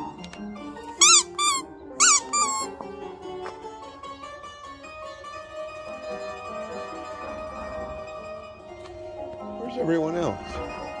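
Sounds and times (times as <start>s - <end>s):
plucked string music: 0.0s - 11.0s.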